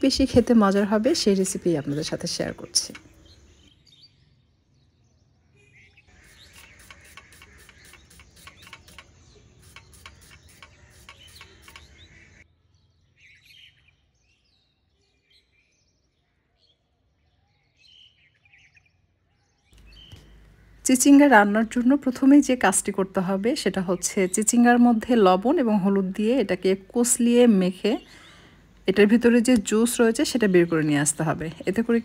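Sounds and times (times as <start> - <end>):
faint bird chirps: 1.8 - 21.8.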